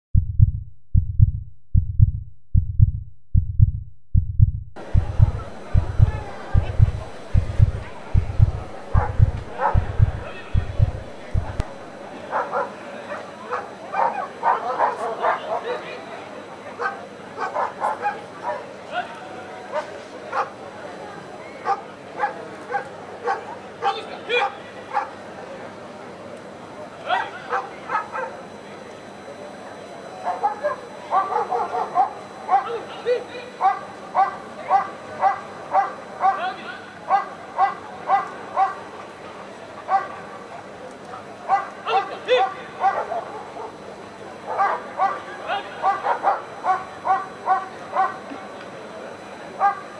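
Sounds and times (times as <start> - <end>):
dog barking: 8.9 - 10.4, 12.3 - 15.9, 16.8 - 18.7, 19.7 - 20.6, 21.6 - 25.2, 27.1 - 28.4, 30.2 - 32.9, 33.6 - 38.9, 39.8 - 40.2, 41.5 - 43.8, 44.4 - 48.3, 49.6 - 49.9.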